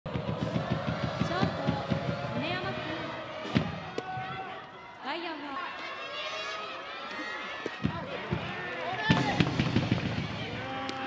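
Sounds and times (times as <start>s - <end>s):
people shouting: 0.1s - 11.0s.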